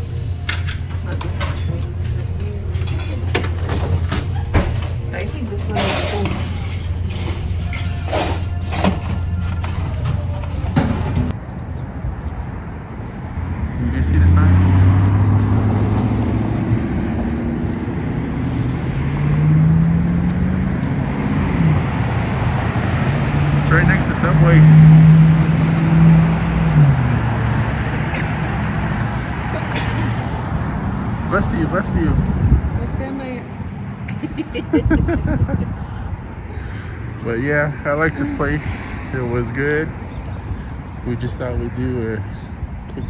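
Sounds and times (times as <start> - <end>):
vehicle engines passing: 0.0 - 43.0.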